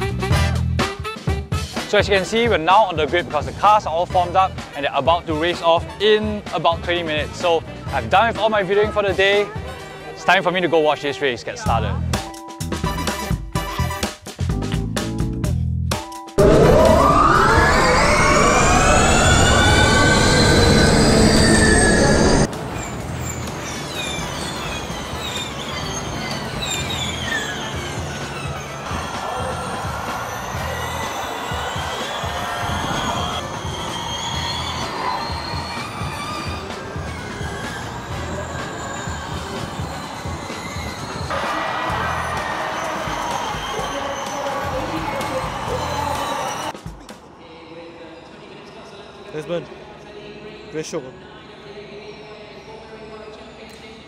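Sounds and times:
race car electric motors whining: 16.4 - 41.3
cars passing by whining: 16.4 - 46.7.

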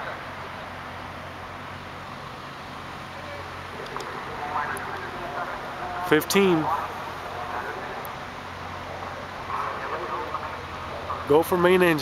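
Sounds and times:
outdoor background noise: 0.0 - 12.0
distant people talking: 3.0 - 12.0.

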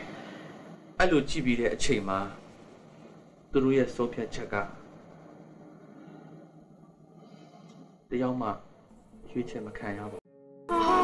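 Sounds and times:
faint room tone hiss: 0.0 - 11.0.

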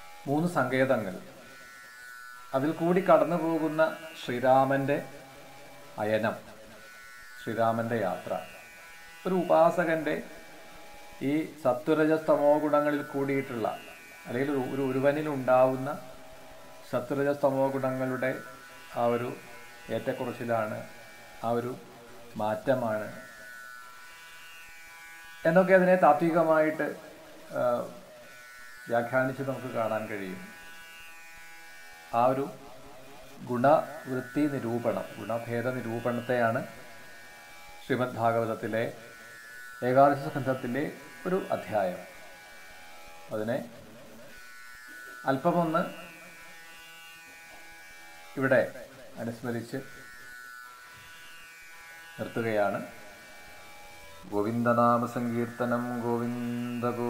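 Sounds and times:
steady electrical buzz: 0.0 - 57.0.

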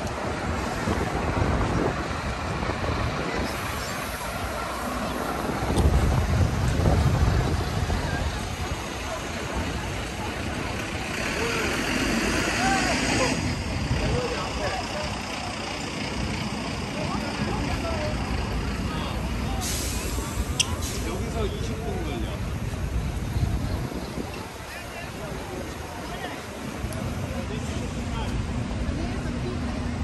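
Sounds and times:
heavy vehicle engine rumbling: 0.0 - 30.0
passers-by talking: 0.0 - 30.0
street traffic: 0.0 - 30.0
hiss: 19.6 - 21.2.

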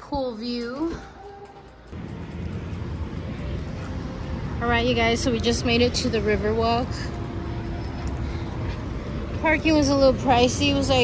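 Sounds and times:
city street traffic rumble: 0.0 - 11.0
soft background music: 0.0 - 11.0.

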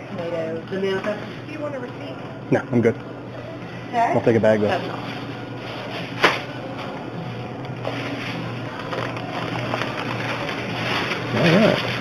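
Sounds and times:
steady low hum: 0.0 - 12.0
plastic bag rustling: 4.7 - 12.0.

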